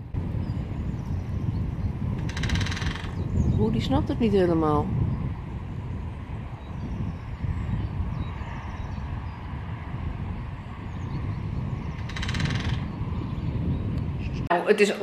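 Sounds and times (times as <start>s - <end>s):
wind rumbling on microphone: 0.0s - 15.0s
woodpecker drumming on metal: 2.2s - 3.4s, 11.9s - 13.0s.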